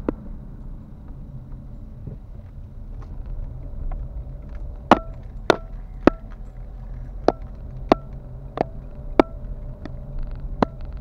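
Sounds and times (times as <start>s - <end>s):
car rumbling on the move: 0.0s - 11.0s
sharp knocks with ringing tone: 4.9s - 6.4s, 7.2s - 9.4s.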